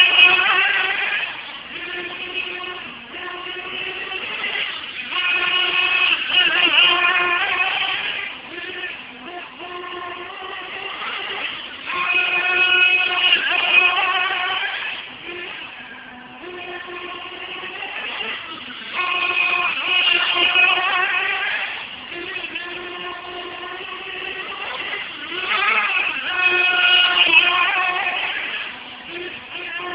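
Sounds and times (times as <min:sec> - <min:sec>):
rc car motor buzzing: 0:00.0 - 0:29.9.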